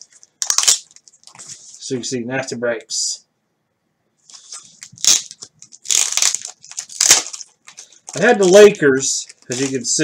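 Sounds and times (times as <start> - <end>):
plastic bag crinkling: 0.0 - 1.6, 4.3 - 10.0.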